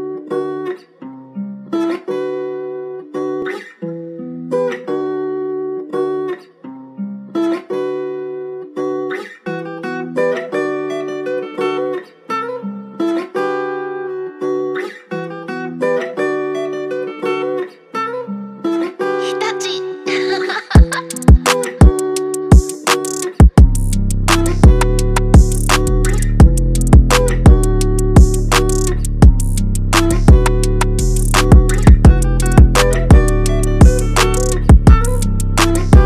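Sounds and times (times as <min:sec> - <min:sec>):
guitar picking looping melody: 0:00.0 - 0:36.0.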